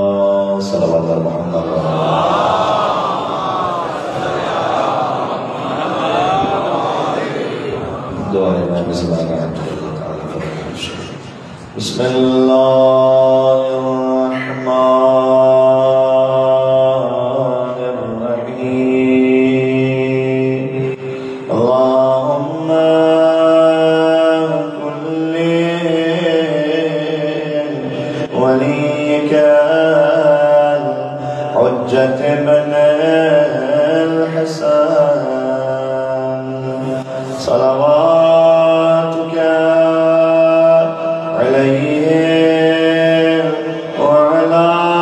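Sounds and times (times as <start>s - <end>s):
man chanting melodically: 0.0s - 3.0s, 6.0s - 45.0s.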